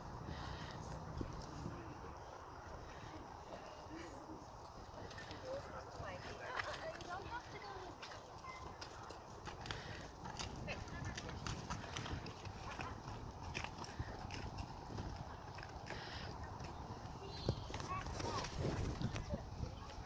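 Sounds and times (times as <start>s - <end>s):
horse hoofbeats on sand: 4.6s - 20.0s.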